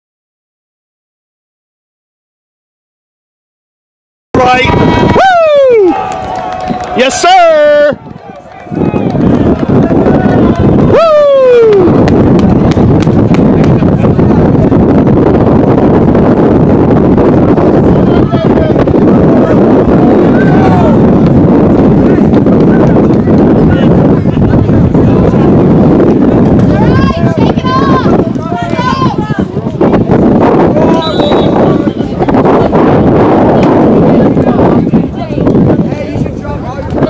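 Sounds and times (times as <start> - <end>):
wind buffeting microphone: 4.4 - 37.0
loud shouts falling in pitch: 26.8 - 29.5.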